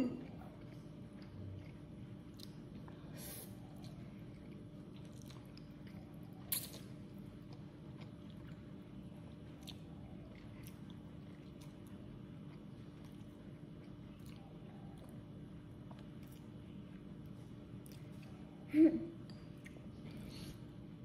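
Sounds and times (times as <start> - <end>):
child chewing: 0.0 - 21.0.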